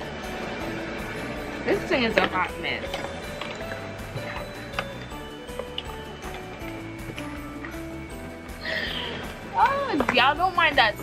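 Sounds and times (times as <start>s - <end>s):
background music of held notes: 0.0s - 11.0s.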